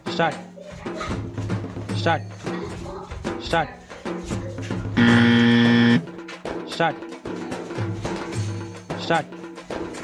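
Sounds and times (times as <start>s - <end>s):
background music: 0.0s - 10.0s
loud buzzer tone: 5.0s - 6.1s.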